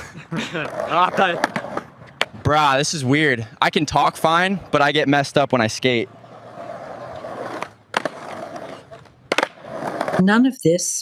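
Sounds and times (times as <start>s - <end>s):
skateboard wheels rolling on concrete: 0.0s - 10.4s
skateboard clacking: 0.5s - 2.4s, 6.3s - 10.2s.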